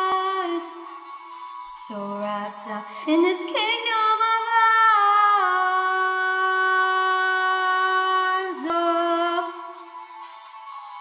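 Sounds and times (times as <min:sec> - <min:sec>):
woman singing pop ballad: 0:00.0 - 0:01.0, 0:01.6 - 0:10.0.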